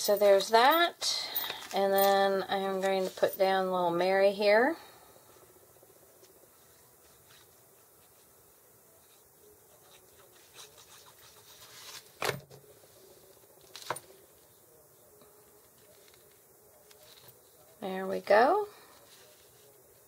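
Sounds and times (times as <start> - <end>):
paper rubbing and rustling: 6.2 - 14.0, 19.0 - 20.0.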